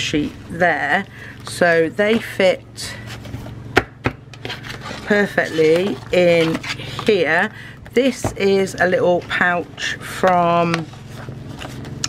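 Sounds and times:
plastic sleeve rustling: 4.5 - 7.2.

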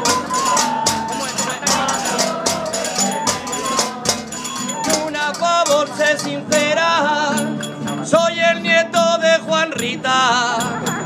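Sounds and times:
folk music group playing: 0.0 - 11.0
sharp percussion strikes: 0.0 - 11.0.

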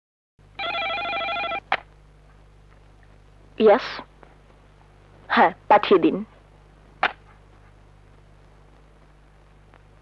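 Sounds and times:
telephone ringing with electronic trill: 0.6 - 1.7.

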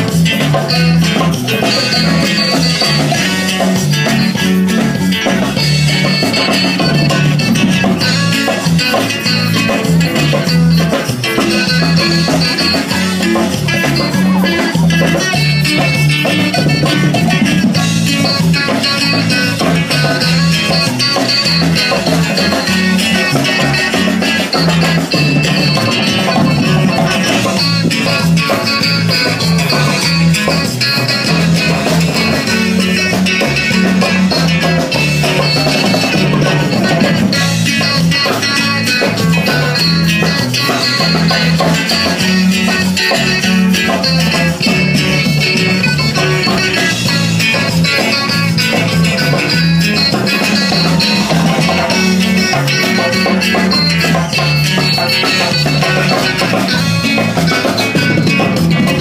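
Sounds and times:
guitar: 0.0 - 59.0
live band music over loudspeakers: 0.0 - 59.0
steady bass line: 0.0 - 59.0.

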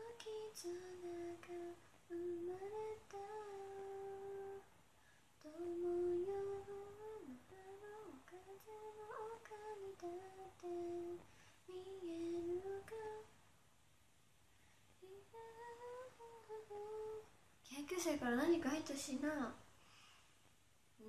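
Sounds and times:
woman humming a tune: 0.0 - 4.6, 15.0 - 17.3.

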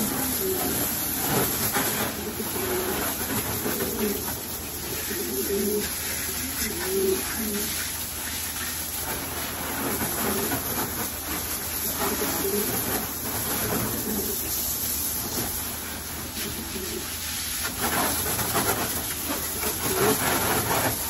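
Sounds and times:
pigeons cooing: 0.0 - 9.0, 9.8 - 14.7, 16.3 - 17.2, 17.8 - 21.0
garden hose spraying water: 0.0 - 21.0.

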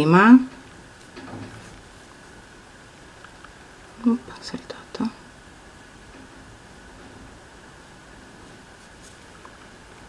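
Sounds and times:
woman whispering: 4.0 - 5.2.

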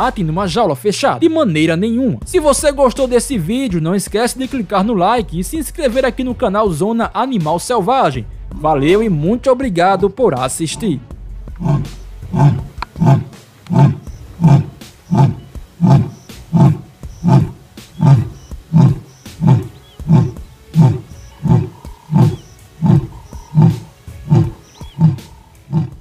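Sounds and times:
lion roaring: 10.7 - 26.0.

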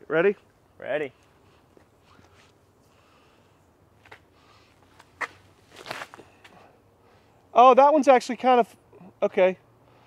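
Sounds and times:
footsteps scuffing on dirt: 4.8 - 6.5.

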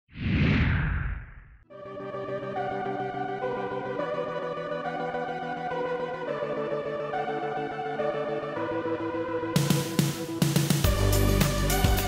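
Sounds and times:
whoosh sound effect: 0.1 - 1.6.

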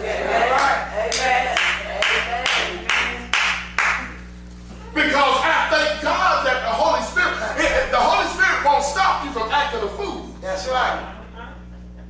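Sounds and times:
low steady hum: 0.0 - 12.0
handclaps in a hall: 0.5 - 4.4.

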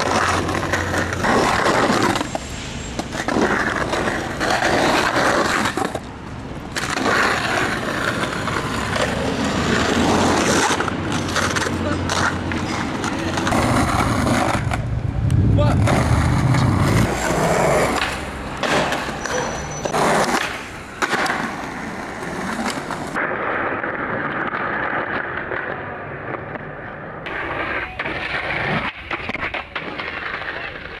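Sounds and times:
skateboard clacking on ground: 0.0 - 31.0
skateboard wheels rolling on concrete: 0.0 - 31.0.

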